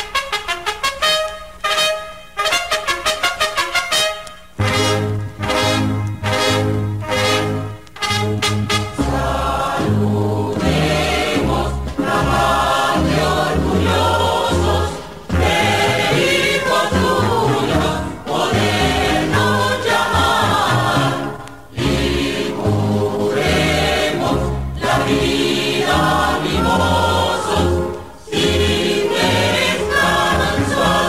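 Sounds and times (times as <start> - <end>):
choir singing with instrumental backing: 4.6 - 31.0.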